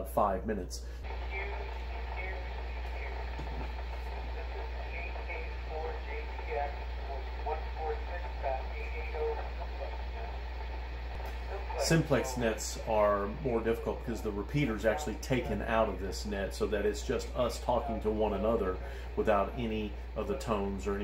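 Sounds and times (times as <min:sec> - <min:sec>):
steady low hum: 0:00.0 - 0:21.0
radio voices through speaker: 0:01.0 - 0:21.0.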